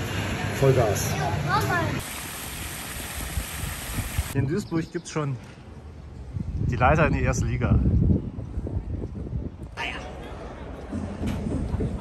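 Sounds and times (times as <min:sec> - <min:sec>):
fountain water jet splashing: 0:01.9 - 0:04.4.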